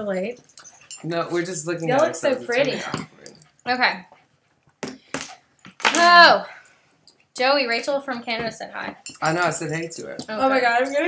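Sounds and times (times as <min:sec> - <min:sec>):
metal tags jingling: 0:00.0 - 0:04.1, 0:05.1 - 0:11.0.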